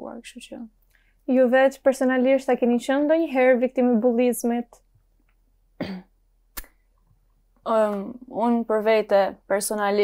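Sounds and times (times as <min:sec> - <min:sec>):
person coughing: 0:05.8 - 0:06.1.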